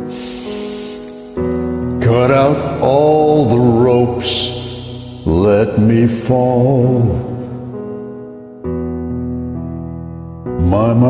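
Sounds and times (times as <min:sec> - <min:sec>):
breath hissing into microphone: 0:00.0 - 0:01.8
piano sustained chords: 0:00.0 - 0:11.0.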